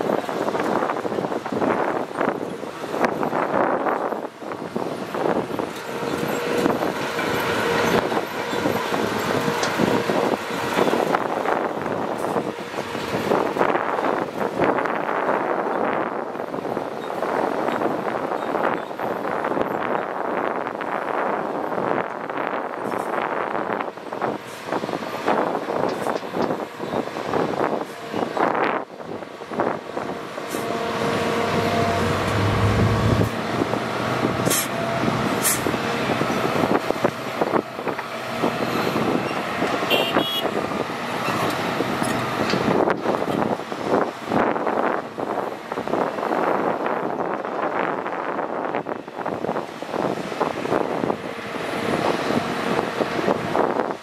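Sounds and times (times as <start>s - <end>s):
excavator engine and hydraulics: 0.0s - 54.0s.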